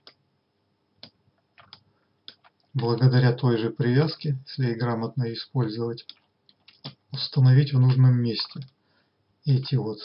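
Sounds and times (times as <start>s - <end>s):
computer mouse and key clicks: 0.0s - 0.2s, 1.0s - 2.8s, 6.0s - 7.1s.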